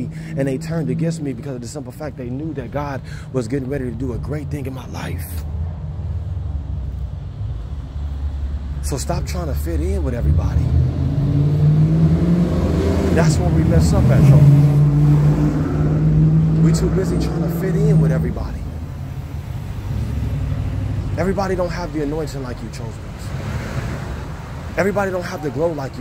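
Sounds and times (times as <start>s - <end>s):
man speaking: 0.0s - 5.5s, 8.8s - 10.8s, 13.1s - 14.7s, 16.5s - 18.7s, 21.1s - 23.3s, 24.8s - 26.0s
low outdoor rumble: 0.0s - 26.0s.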